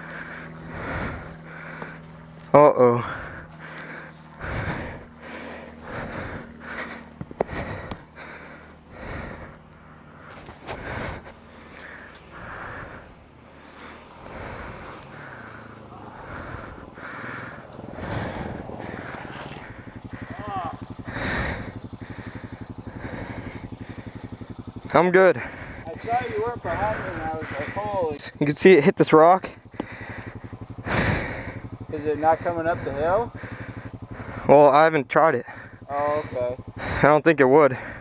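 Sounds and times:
hard breathing: 0:00.0 - 0:28.5, 0:29.3 - 0:34.6, 0:35.4 - 0:38.0
atv engine idling: 0:00.0 - 0:38.0.

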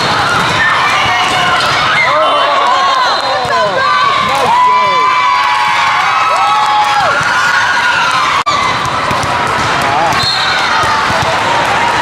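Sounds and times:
volleyball bouncing on floor: 0:08.5 - 0:11.9
referee's whistle blast: 0:10.1 - 0:10.7.

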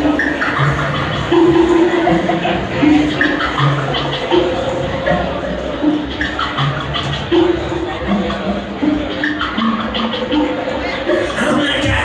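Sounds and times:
electronic music with looped notes: 0:00.0 - 0:12.0.

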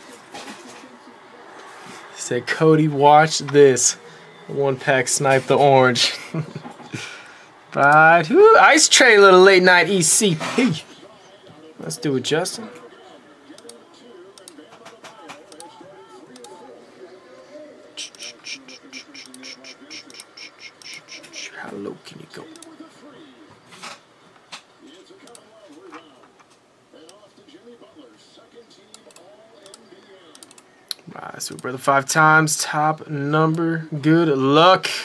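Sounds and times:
faint background voices: 0:00.0 - 0:09.1, 0:09.9 - 0:34.0.

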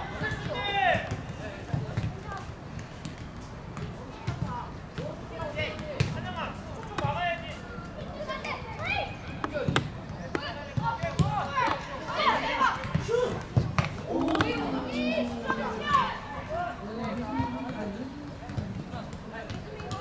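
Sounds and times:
children shouting: 0:14.0 - 0:17.6.

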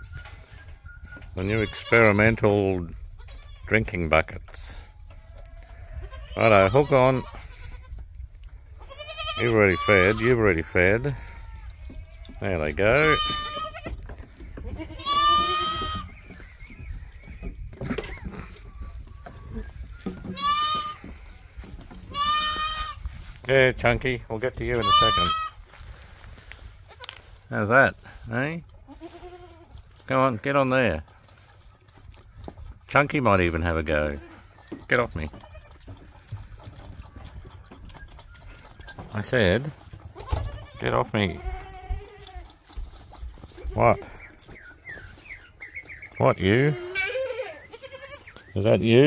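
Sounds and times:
goat kid bleating: 0:01.4 - 0:02.2, 0:03.0 - 0:03.8, 0:05.2 - 0:08.1, 0:08.7 - 0:16.2, 0:18.3 - 0:23.1, 0:24.7 - 0:25.6, 0:26.8 - 0:27.4, 0:28.7 - 0:30.0, 0:33.9 - 0:37.4, 0:40.0 - 0:42.8, 0:46.5 - 0:48.5.

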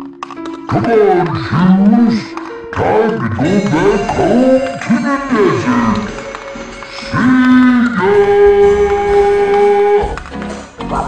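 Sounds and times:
sliding voice-like tone: 0:00.7 - 0:06.1, 0:07.0 - 0:10.2.

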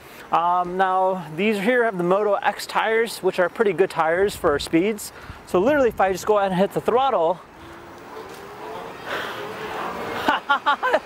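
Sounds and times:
electric bike motor whine: 0:07.5 - 0:10.2.

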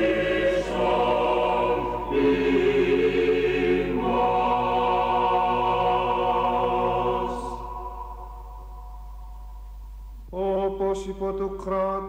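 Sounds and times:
choir holding a chord: 0:00.0 - 0:09.7
steady low hum: 0:00.0 - 0:12.0.

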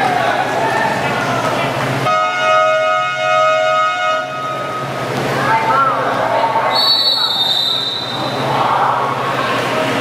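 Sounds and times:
crowd chatter: 0:00.0 - 0:02.2, 0:04.5 - 0:10.0.

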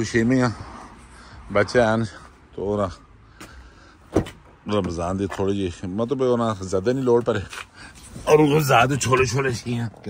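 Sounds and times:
quiet outdoor background: 0:00.0 - 0:10.0.

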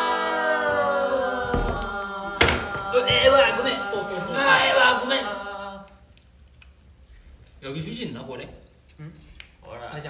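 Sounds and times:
group of men chanting: 0:00.0 - 0:05.9.

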